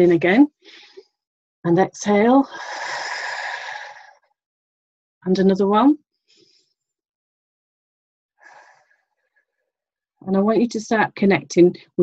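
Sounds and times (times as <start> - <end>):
person exhaling deeply: 2.5 - 4.2.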